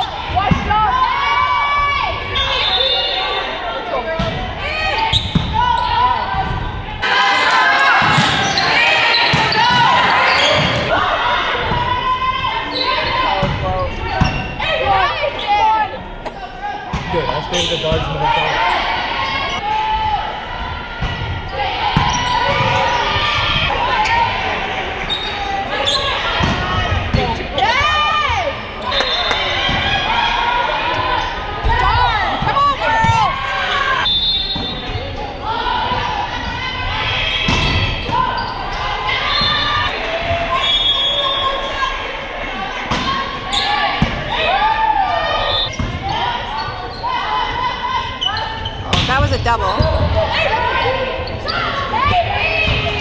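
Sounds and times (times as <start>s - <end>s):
players shouting: 0.0s - 53.0s.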